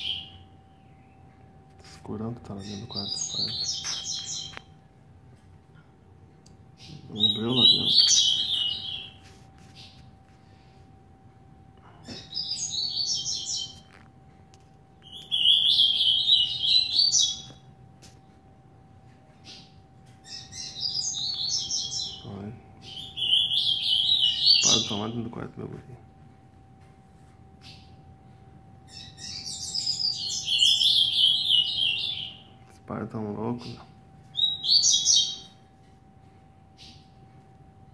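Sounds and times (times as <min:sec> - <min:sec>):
caged bird singing high fast phrase: 0:00.0 - 0:01.3, 0:02.5 - 0:04.5, 0:06.7 - 0:09.2, 0:12.1 - 0:13.9, 0:15.0 - 0:17.7, 0:19.4 - 0:25.3, 0:28.9 - 0:32.6, 0:34.3 - 0:35.6.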